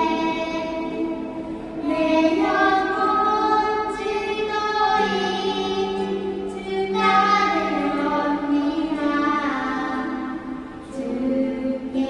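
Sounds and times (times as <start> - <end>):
woman and girl singing: 0.0 - 12.0.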